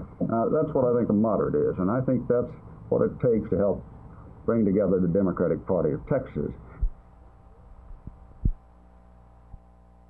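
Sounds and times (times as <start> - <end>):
electrical hum: 0.0 - 10.0
dull low thumps: 7.8 - 8.6.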